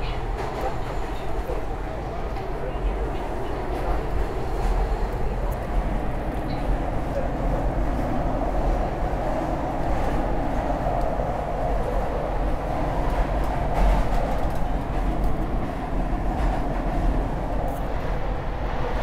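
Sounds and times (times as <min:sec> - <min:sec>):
subway train wheels rumbling on rail: 0:00.0 - 0:19.0.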